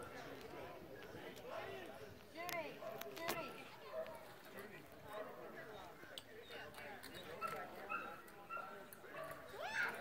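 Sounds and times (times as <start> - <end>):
murmur of distant voices: 0.0 - 10.0.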